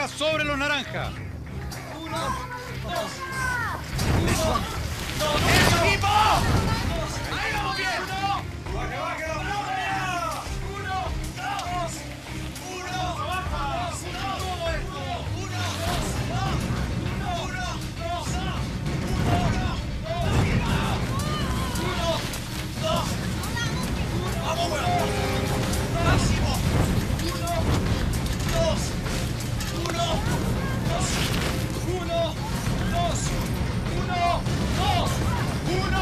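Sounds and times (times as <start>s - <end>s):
people shouting encouragement: 1.6s - 27.7s.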